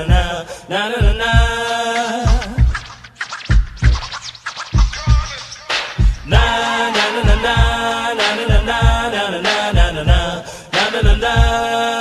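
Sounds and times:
heavy kick-drum beat: 0.0s - 0.4s, 1.0s - 11.8s
hip hop music: 1.0s - 12.0s
turntable scratching: 1.4s - 10.2s
person singing: 6.2s - 12.0s.

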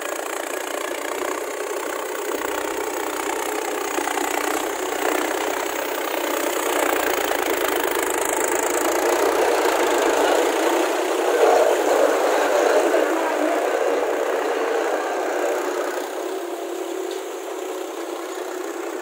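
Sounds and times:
tractor diesel engine running hard: 0.0s - 19.0s.

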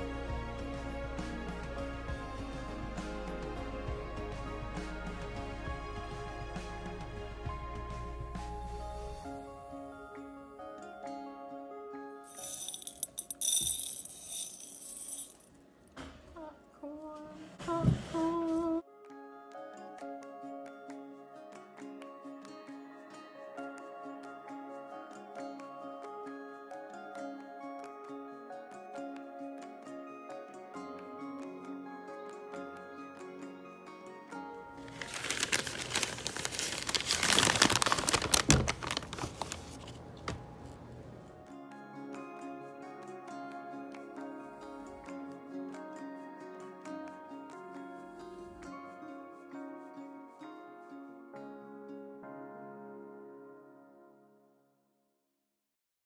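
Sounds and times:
background music: 0.0s - 54.5s
popcorn kernels rattling in glass bowl: 12.3s - 15.5s, 34.8s - 39.2s
paper bag crinkling: 34.8s - 40.3s.

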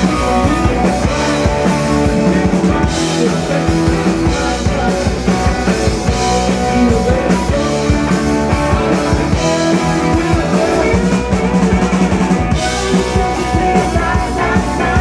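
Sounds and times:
drum kit steady beat: 0.0s - 15.0s
electric guitar: 0.0s - 15.0s.

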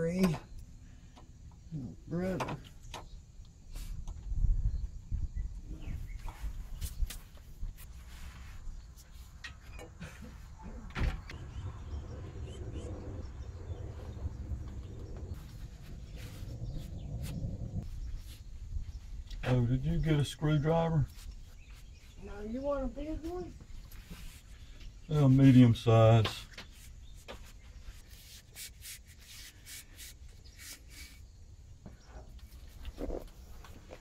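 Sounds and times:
steady low rumble: 10.5s - 20.6s.

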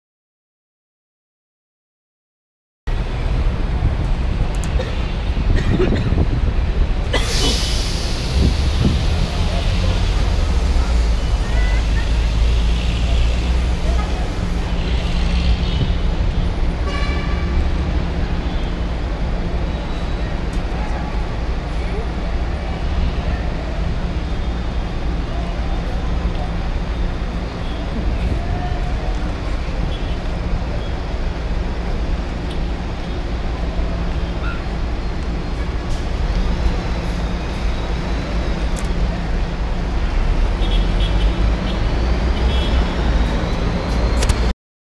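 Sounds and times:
rumble of road traffic: 2.9s - 44.6s.

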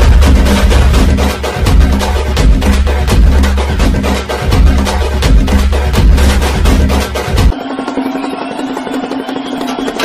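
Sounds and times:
dance remix music: 0.0s - 10.0s.

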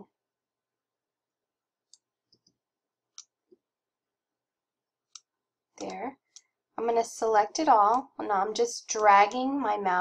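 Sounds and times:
computer mouse clicks: 1.8s - 3.6s, 5.1s - 6.5s.

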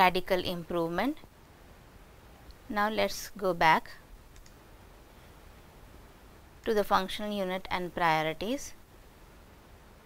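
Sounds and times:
computer mouse click: 4.3s - 4.6s.

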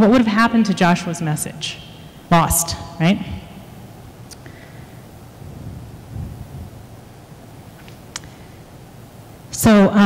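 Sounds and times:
microphone handling rumble: 5.3s - 8.4s.

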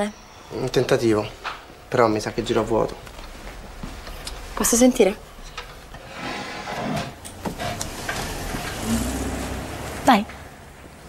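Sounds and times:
wooden chair scraping: 5.9s - 10.0s.

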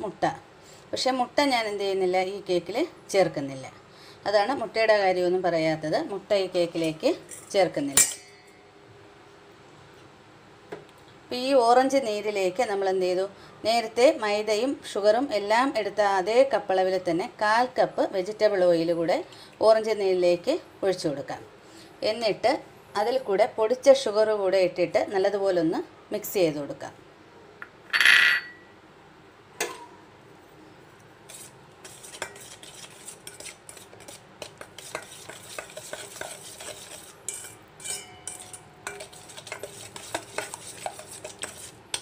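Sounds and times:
spoon clinking on metal bowl: 7.3s - 8.6s, 27.9s - 28.6s, 34.8s - 42.0s
metal knocking on steel bowl: 27.9s - 28.6s.

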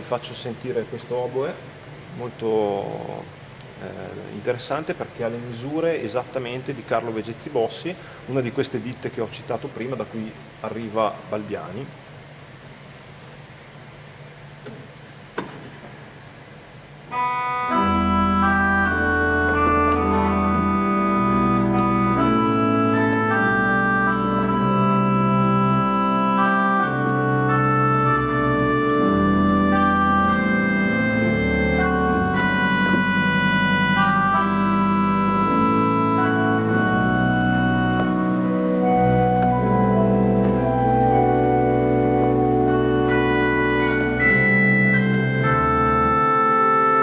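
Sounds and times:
pipe organ playing held notes: 0.0s - 12.0s, 16.6s - 47.0s
low pedal bass: 17.7s - 46.7s.

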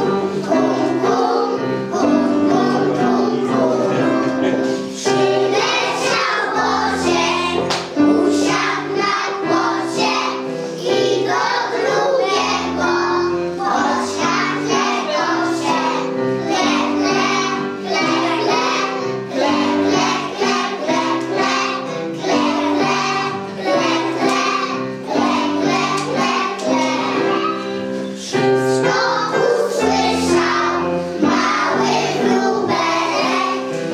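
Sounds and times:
children singing in unison: 0.0s - 33.9s
musical accompaniment of held notes: 0.0s - 33.9s.

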